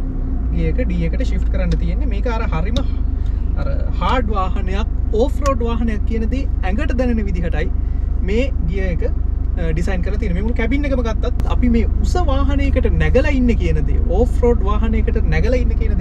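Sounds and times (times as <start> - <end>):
car engine rumble inside cabin: 0.0 - 16.0
man talking: 0.5 - 16.0.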